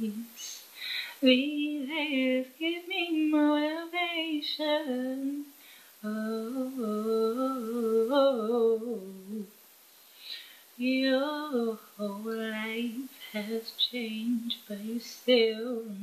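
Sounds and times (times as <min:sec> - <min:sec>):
woman singing wordless melody: 0:00.0 - 0:09.6, 0:10.3 - 0:16.0.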